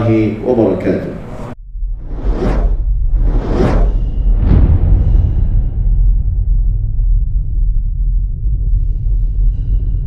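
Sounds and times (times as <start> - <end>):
cinematic whooshes: 1.2 - 10.0
deep steady rumble: 1.6 - 10.0.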